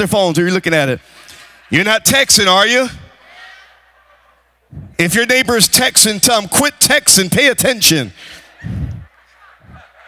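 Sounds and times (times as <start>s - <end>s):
man's amplified speech: 0.0s - 3.2s, 4.7s - 9.1s.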